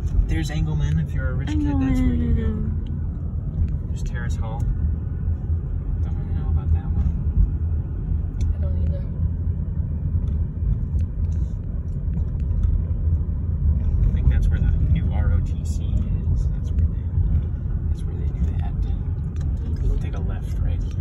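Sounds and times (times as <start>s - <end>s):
car engine and road noise: 0.0s - 21.0s.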